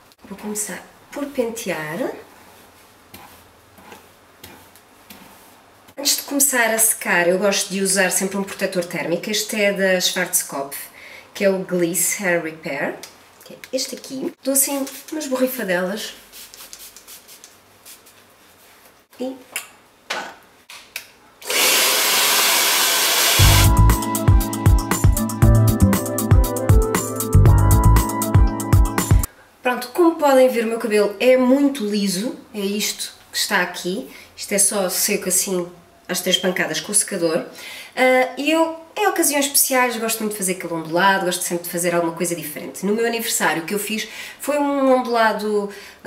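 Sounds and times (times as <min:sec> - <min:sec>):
hairbrush swishing through hair: 0:02.2 - 0:05.6, 0:14.6 - 0:15.3, 0:16.2 - 0:18.9
hair dryer blowing: 0:21.4 - 0:23.8
music with heavy beat: 0:23.4 - 0:29.3.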